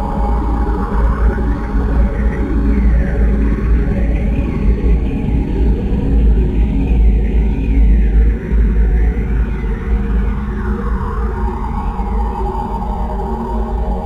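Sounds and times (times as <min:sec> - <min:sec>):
dense grainy noise: 0:00.0 - 0:14.0.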